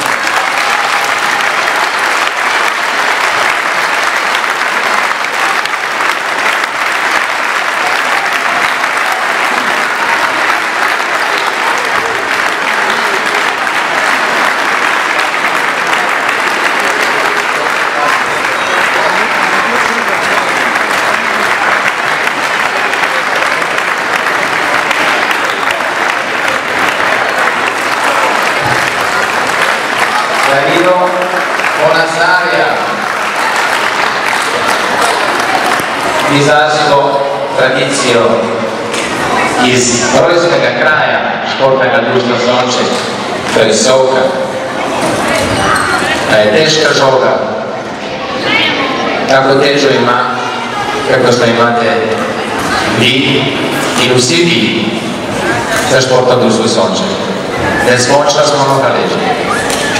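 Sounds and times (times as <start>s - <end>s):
crowd applauding: 0.0s - 59.9s.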